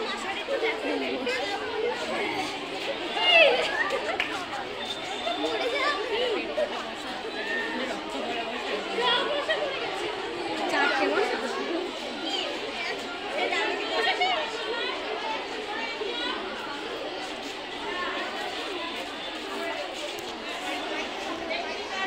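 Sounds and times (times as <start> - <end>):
voices chattering: 0.0 - 22.0.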